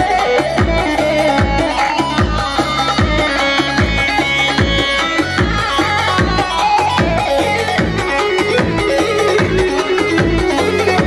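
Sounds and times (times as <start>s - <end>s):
electronic keyboard melody: 0.0s - 11.0s
steady drum beat: 0.0s - 11.0s.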